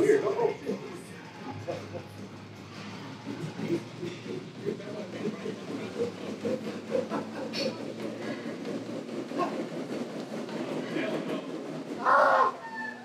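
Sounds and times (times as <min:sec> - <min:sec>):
stair machine mechanical rumble: 0:00.0 - 0:13.0.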